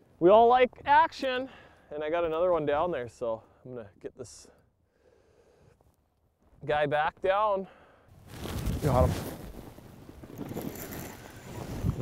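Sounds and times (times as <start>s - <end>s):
wind buffeting microphone: 10.4s - 12.0s.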